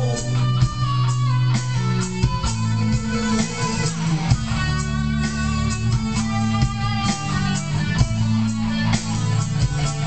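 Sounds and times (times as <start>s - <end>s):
electric guitar lead melody: 0.0s - 10.0s
sustained low bass notes: 0.0s - 10.0s.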